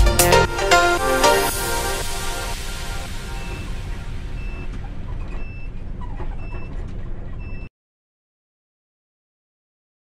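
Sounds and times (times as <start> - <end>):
bus engine and road rumble: 0.8 - 7.7
high electronic beep: 2.5 - 5.7.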